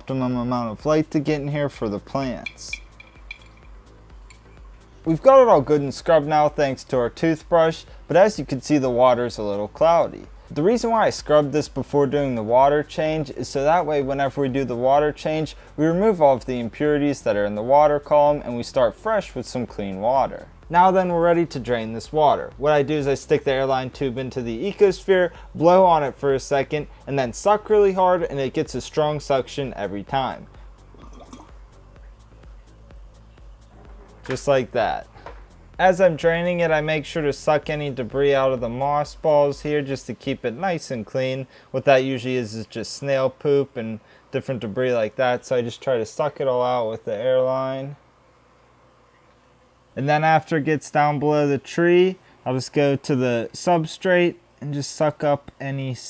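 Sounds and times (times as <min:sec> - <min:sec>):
faint background music: 0:00.0 - 0:56.0
toothbrush clinking on glass jar: 0:02.4 - 0:04.6
water dripping and trickling: 0:02.4 - 0:04.6.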